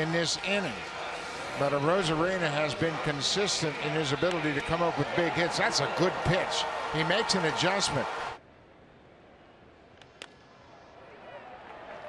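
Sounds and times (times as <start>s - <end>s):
faint stadium crowd murmur: 0.0s - 8.4s, 9.1s - 12.0s
loud ballpark crowd: 0.0s - 8.4s, 10.7s - 12.0s.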